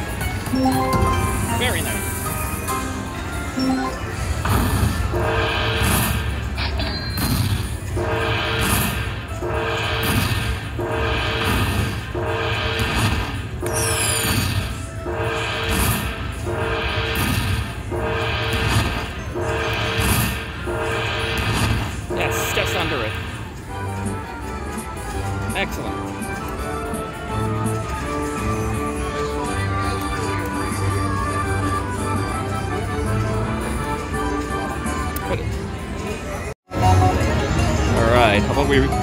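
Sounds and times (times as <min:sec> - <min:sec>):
slot machine jingle: 0:00.0 - 0:39.0
casino background noise: 0:18.0 - 0:39.0.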